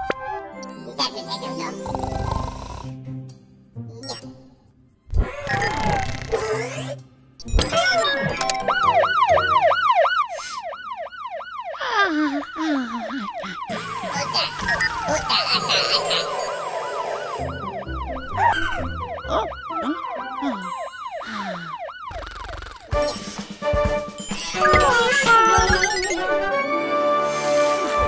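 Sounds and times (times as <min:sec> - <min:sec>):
cartoon siren yelping: 0:07.6 - 0:22.9, 0:24.5 - 0:26.3.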